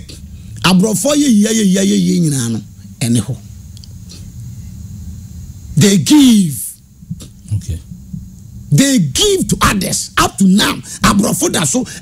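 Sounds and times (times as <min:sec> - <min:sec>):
man speaking into a microphone: 0:08.7 - 0:12.0.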